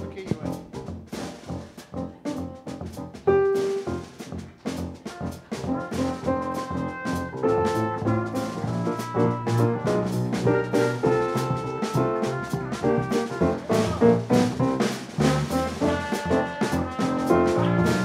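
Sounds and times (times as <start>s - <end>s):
jazz combo playing: 0.0s - 18.0s
trumpet melody: 0.0s - 18.0s.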